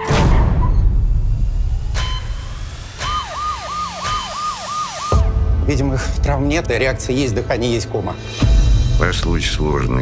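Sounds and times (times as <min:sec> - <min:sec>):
siren yelping: 0:03.0 - 0:05.3.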